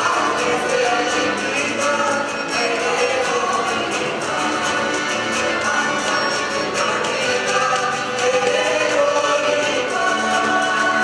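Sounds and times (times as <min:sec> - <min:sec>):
folk ensemble with accordion and guitars: 0:00.0 - 0:11.0
voices singing together: 0:00.0 - 0:11.0.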